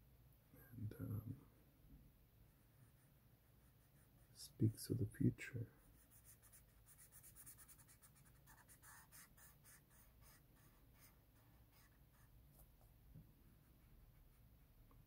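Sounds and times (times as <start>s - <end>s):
marker rubbing on paper: 2.7s - 4.4s, 5.9s - 12.7s.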